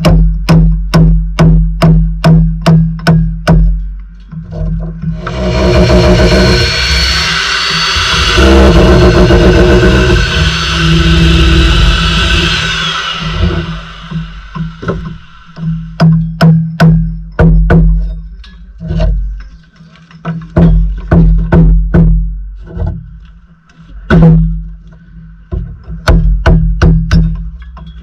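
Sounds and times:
hammer drill boring into brick: 0:05.2 - 0:15.6.

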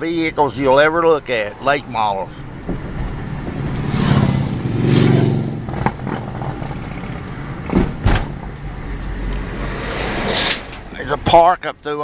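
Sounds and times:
car road noise: 0:00.0 - 0:12.0
motorcycle engine passing: 0:03.8 - 0:07.2.

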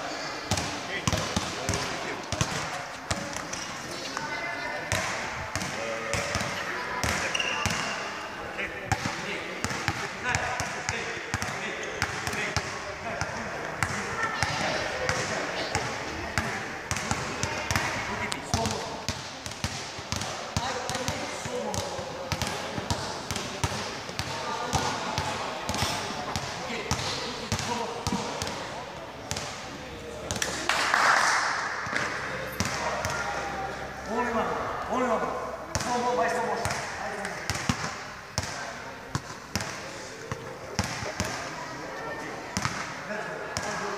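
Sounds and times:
basketballs bouncing on floor: 0:00.5 - 0:03.7, 0:04.9 - 0:07.9, 0:08.9 - 0:28.6, 0:29.2 - 0:29.6, 0:31.9 - 0:33.2, 0:35.7 - 0:41.4.

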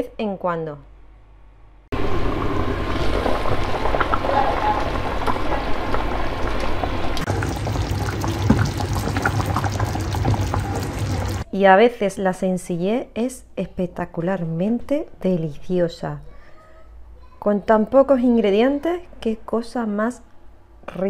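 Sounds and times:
sauce bubbling at a hard boil: 0:02.2 - 0:11.5.

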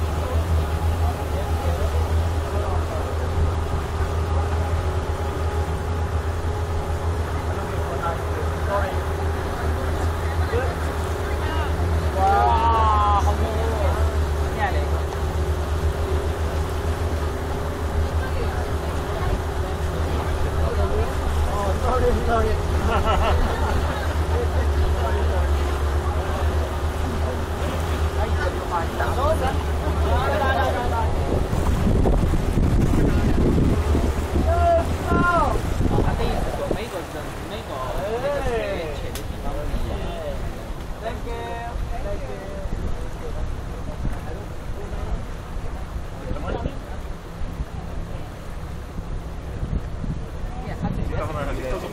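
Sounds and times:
speedboat engine humming: 0:00.0 - 0:51.9
voices talking: 0:00.0 - 0:51.9
wind buffeting microphone: 0:00.0 - 0:51.9.

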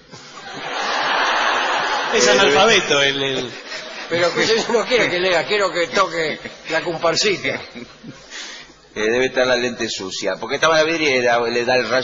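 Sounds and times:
audience laughing: 0:00.2 - 0:08.3.

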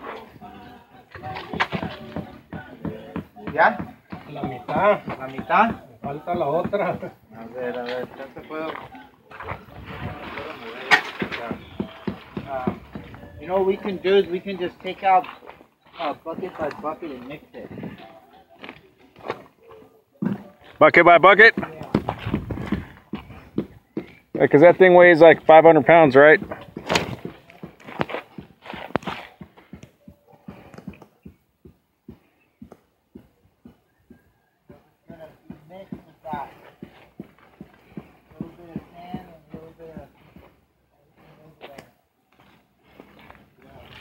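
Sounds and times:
faint voices talking: 0:00.0 - 0:44.0
footsteps on dirt: 0:00.0 - 0:44.0.

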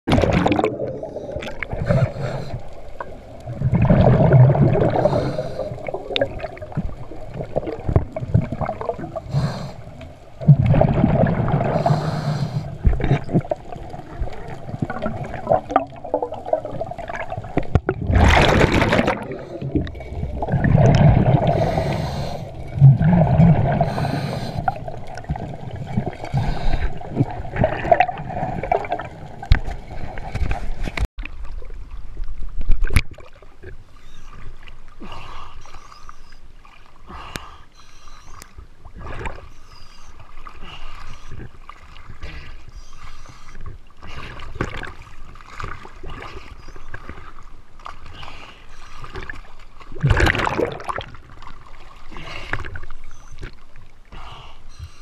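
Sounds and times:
exhaled bubbles gurgling underwater: 0:00.1 - 0:34.7, 0:49.0 - 0:54.0
regulator hissing inhales: 0:04.9 - 0:05.8, 0:09.2 - 0:09.9, 0:11.8 - 0:12.8, 0:21.5 - 0:22.6, 0:23.8 - 0:24.8.

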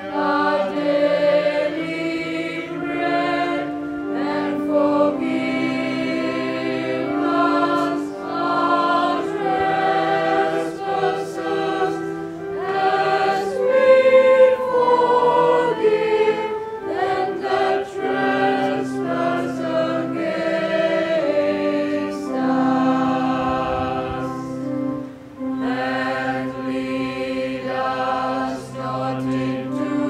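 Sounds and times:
choir singing a hymn: 0:00.0 - 0:30.0.

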